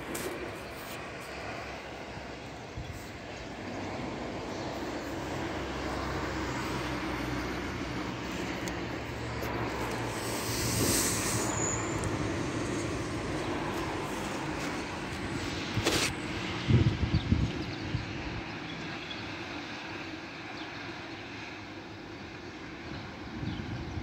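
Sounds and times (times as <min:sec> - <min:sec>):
distant traffic rumble: 0:00.0 - 0:24.0
large vehicle engine hum: 0:00.0 - 0:24.0
hiss: 0:10.0 - 0:13.0.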